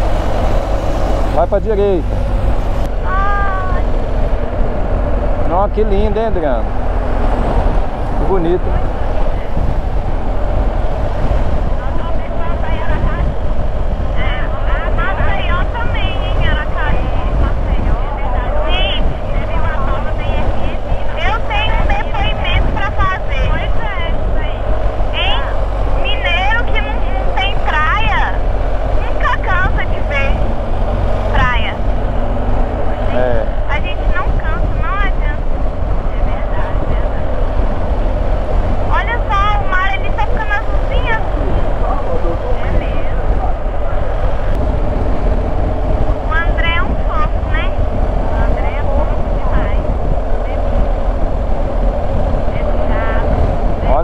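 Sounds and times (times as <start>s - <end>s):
motorcycle engine drone: 0.0s - 54.0s
wind noise: 0.0s - 54.0s.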